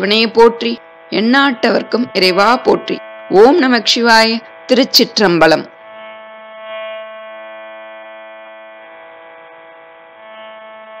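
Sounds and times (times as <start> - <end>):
sustained musical drone: 0.0 - 11.0.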